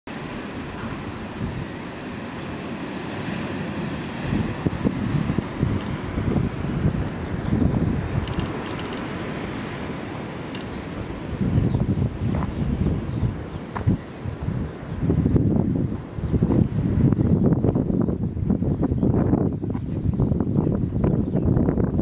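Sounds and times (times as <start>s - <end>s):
sea surf breaking on rocks: 0.1s - 18.6s
wind buffeting microphone: 0.1s - 22.0s.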